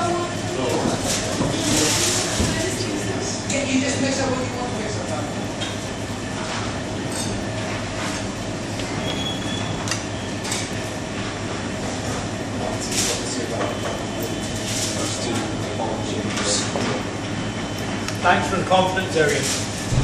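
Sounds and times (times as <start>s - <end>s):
low rumbling room noise: 0.0s - 20.0s.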